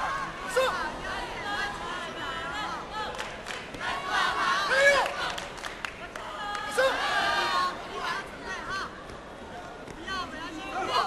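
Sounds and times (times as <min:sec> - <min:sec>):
crowd noise: 0:00.0 - 0:11.0.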